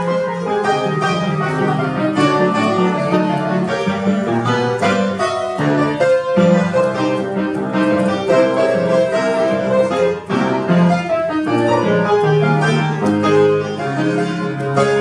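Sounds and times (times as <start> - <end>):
upright piano playing: 0.0 - 15.0.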